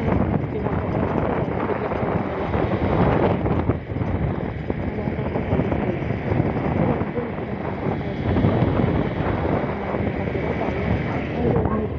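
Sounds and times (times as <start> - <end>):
road and vehicle noise: 0.0 - 11.9
wind buffeting microphone: 0.0 - 11.9.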